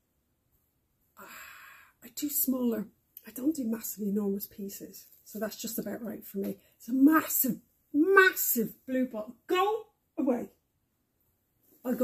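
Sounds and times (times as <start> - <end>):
woman breathy sigh: 1.2 - 2.0.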